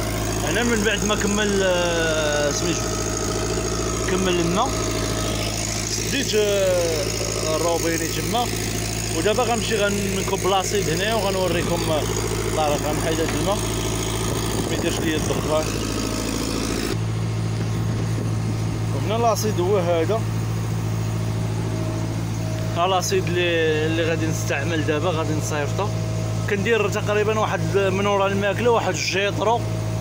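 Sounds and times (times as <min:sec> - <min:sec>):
voices: 0:00.0 - 0:15.9, 0:18.8 - 0:20.3, 0:22.5 - 0:29.7
engine-driven pump running: 0:00.0 - 0:30.0.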